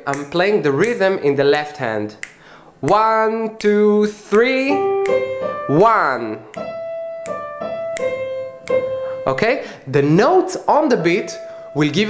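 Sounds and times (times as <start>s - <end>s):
digital piano notes: 2.8s - 12.0s.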